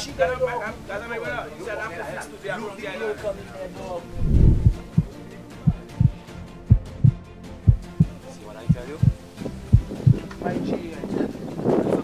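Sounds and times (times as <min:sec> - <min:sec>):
music: 0:00.0 - 0:12.0
deep thumping beat: 0:04.2 - 0:05.1, 0:05.7 - 0:10.3.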